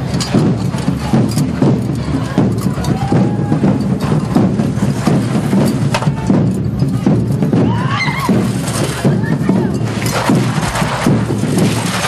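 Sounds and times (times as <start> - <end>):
crowd voices: 0.0 - 12.0
drum group playing a beat: 0.0 - 12.0.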